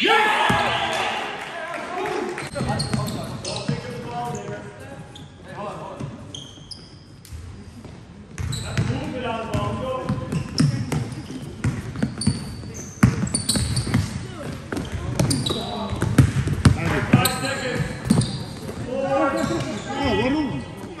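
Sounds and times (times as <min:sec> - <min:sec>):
sneakers squeaking: 0:02.4 - 0:21.0
basketball bouncing: 0:09.5 - 0:18.8
players calling out: 0:16.7 - 0:21.0.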